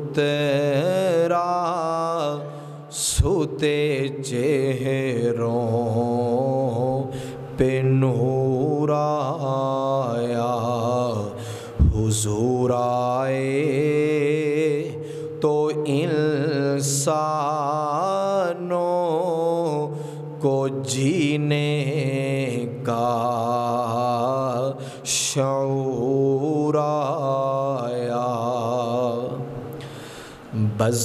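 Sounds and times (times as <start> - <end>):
man singing with vibrato: 0.0 - 31.0.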